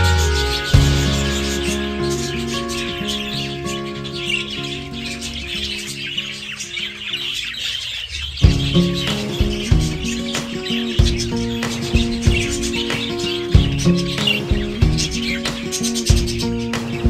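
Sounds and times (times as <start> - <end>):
background music with beat: 0.0 - 3.8, 8.4 - 17.0
budgerigars chattering and chirping: 0.0 - 17.0.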